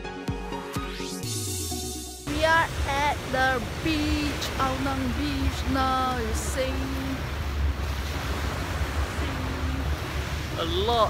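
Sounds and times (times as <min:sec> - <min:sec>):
small waves breaking on sand: 0:02.3 - 0:11.0.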